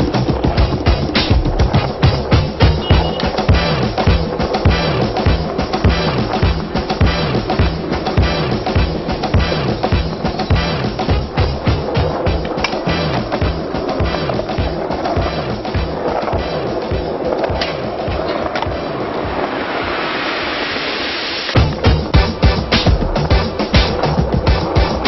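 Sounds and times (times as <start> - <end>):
music with driving drum beat: 0.0 - 20.1, 21.5 - 25.0.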